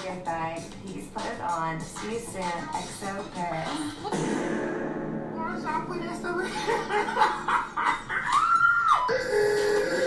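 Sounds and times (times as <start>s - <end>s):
steady musical tones: 3.0s - 10.0s
woman screaming: 8.2s - 9.1s.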